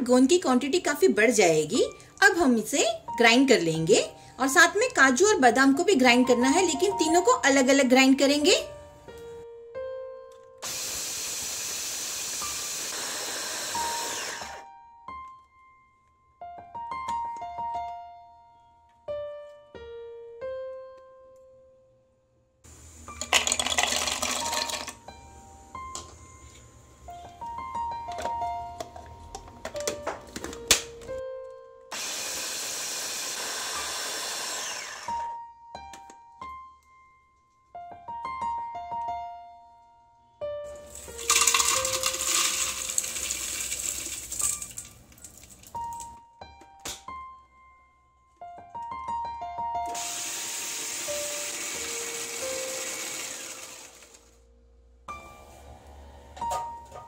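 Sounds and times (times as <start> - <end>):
soft piano music: 0.0 - 10.6, 13.7 - 31.9, 35.1 - 57.0
electric food chopper grinding: 10.6 - 14.6, 31.9 - 35.4, 40.9 - 44.4, 49.9 - 54.3.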